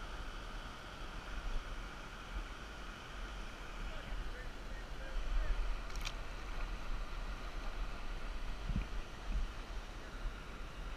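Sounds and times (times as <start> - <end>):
stream running over rocks: 0.0 - 10.9
wind rumble on microphone: 5.0 - 10.9.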